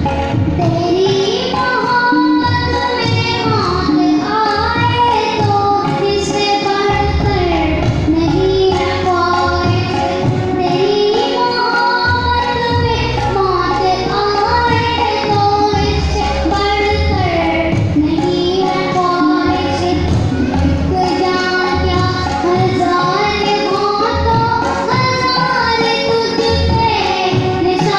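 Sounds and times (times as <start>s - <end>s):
boy singing over loudspeakers: 0.0s - 27.9s.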